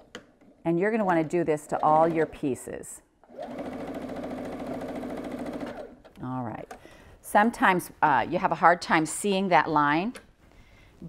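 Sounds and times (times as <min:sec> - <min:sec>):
sewing machine stitching: 0:03.3 - 0:06.1.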